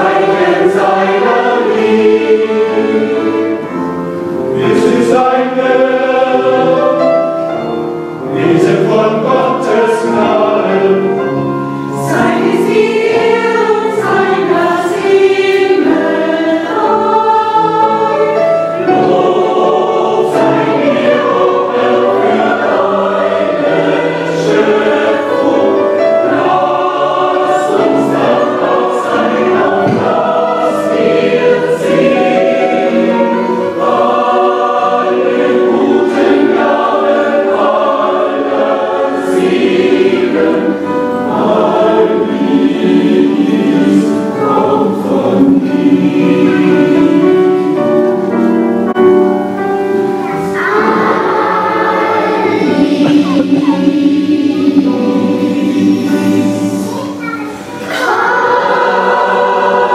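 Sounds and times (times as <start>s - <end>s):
adult and children's choirs singing: 0.0s - 59.9s.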